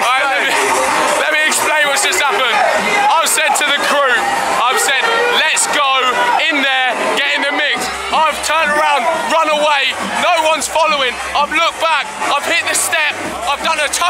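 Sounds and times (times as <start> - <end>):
loud dance music: 0.0 - 14.0.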